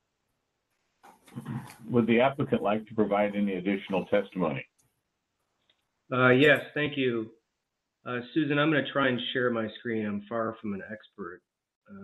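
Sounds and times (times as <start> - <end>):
man speaking: 1.4 - 4.6, 6.1 - 7.3, 8.1 - 12.0.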